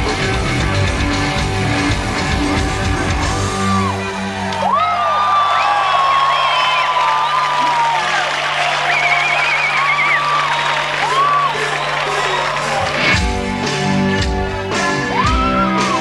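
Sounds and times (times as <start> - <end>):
stadium crowd cheering and whistling: 3.2 - 13.4, 14.8 - 16.0.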